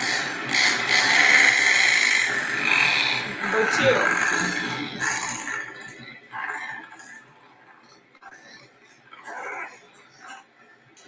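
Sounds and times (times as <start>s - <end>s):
razorbill harsh calls: 0.0s - 5.8s.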